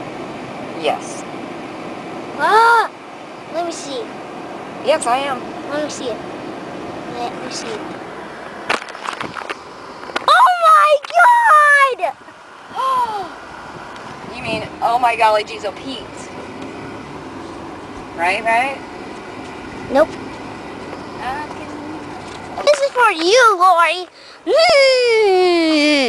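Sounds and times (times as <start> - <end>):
car interior noise: 0.0 - 26.0.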